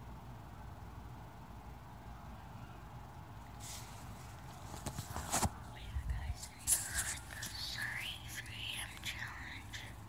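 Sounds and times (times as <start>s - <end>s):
person whispering: 5.6s - 10.0s.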